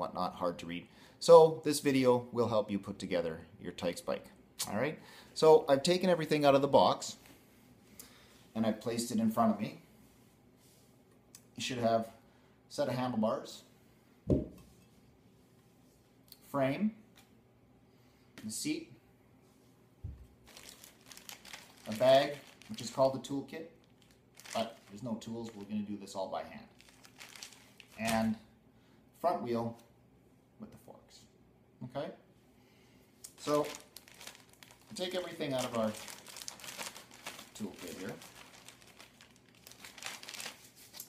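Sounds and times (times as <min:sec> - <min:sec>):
plastic bag crinkling: 0:20.4 - 0:25.9, 0:26.7 - 0:28.3, 0:33.3 - 0:41.0.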